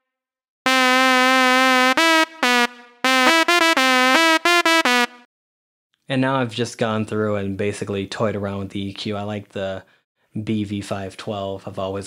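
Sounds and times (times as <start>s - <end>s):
reedy synthesizer melody: 0.7s - 5.3s.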